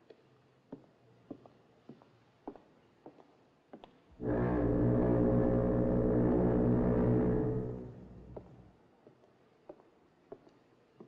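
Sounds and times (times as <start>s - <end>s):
ship's foghorn blast: 4.2s - 8.0s.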